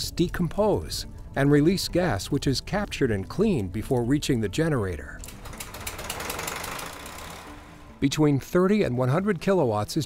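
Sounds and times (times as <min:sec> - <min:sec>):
machinery humming: 0:05.4 - 0:08.0.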